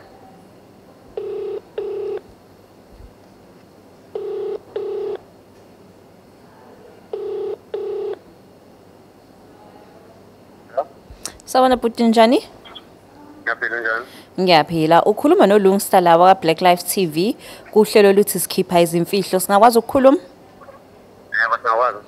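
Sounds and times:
telephone ringback tone: 1.2 - 2.2, 4.2 - 5.2, 7.1 - 8.2.

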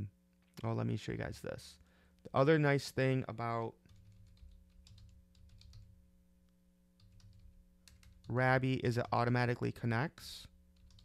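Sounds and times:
low steady hum: 0.0 - 11.0
faint keyboard typing: 3.6 - 6.0, 7.0 - 9.6, 10.4 - 11.0.

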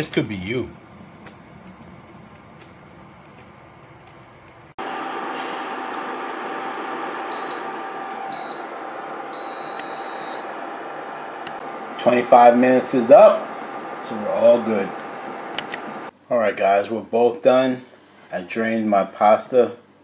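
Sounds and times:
cooktop steady hum: 0.0 - 20.0
cooktop timer beeps: 7.3 - 10.6.

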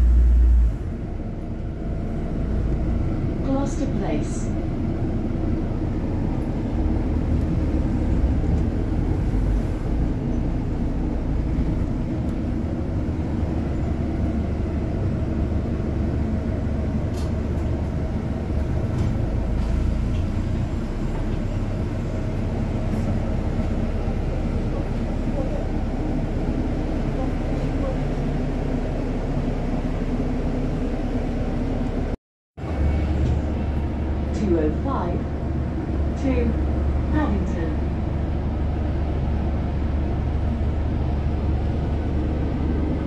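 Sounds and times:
bus engine and road rumble: 0.0 - 43.0.

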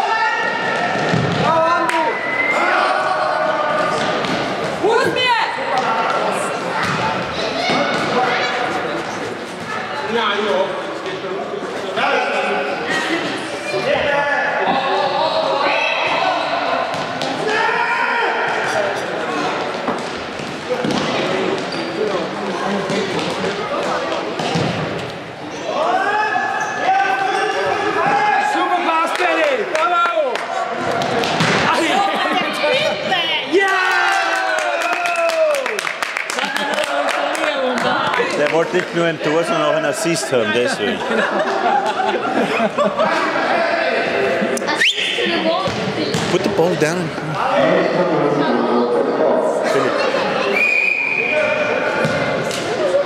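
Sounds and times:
players and spectators shouting: 0.0 - 8.9, 13.5 - 19.4, 25.6 - 35.8.

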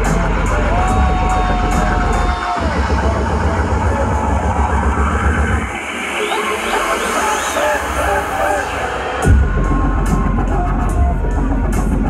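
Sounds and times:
dubstep music over sound system: 0.0 - 12.0.

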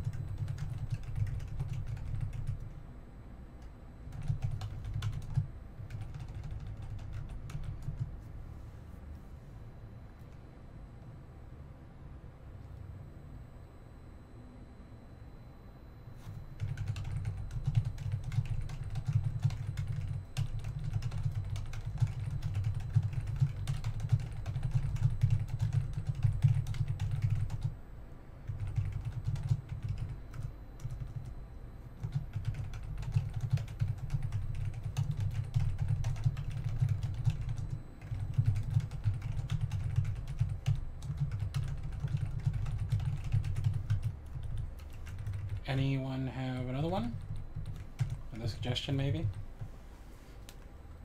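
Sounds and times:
fast typing on keyboard: 0.0 - 2.7, 4.1 - 8.1, 16.6 - 27.8, 28.5 - 31.3, 32.0 - 45.8, 46.5 - 49.4.

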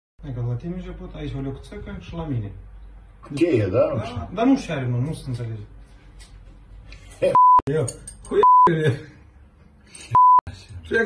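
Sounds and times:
speech: 0.2 - 2.6, 10.5 - 11.0
censor beeps: 7.4 - 7.7, 8.4 - 8.7, 10.2 - 10.4.

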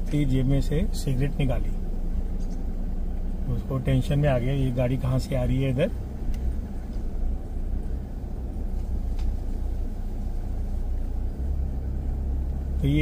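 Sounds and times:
car engine and tyre rumble: 0.0 - 13.0.

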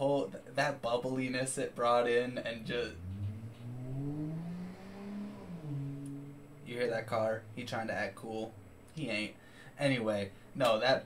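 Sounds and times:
car engine revving: 2.4 - 9.1.

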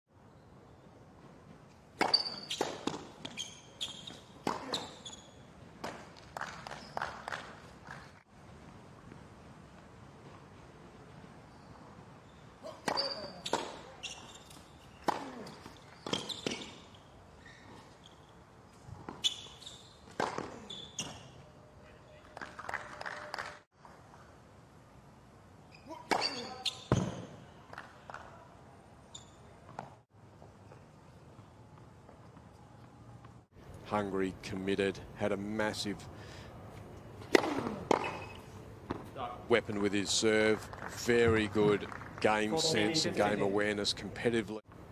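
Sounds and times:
racket hitting tennis ball: 2.0 - 5.1, 5.8 - 7.6, 12.7 - 16.9, 20.0 - 21.2, 26.0 - 27.4, 37.2 - 39.1
shoe squeaks on court: 2.0 - 5.5, 6.5 - 7.2, 11.5 - 21.5, 25.6 - 27.4, 29.0 - 30.0, 37.9 - 38.6
tennis ball bouncing: 2.0 - 7.6, 12.7 - 17.0, 18.9 - 21.2, 37.2 - 39.2.

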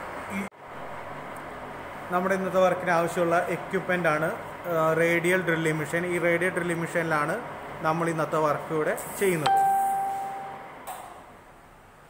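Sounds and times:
bell-like ding: 9.5 - 10.7.

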